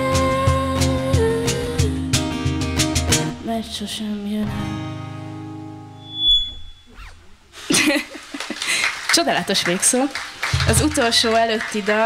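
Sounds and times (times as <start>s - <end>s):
short high tone: 6.0s - 7.2s
audience applause: 7.9s - 12.0s.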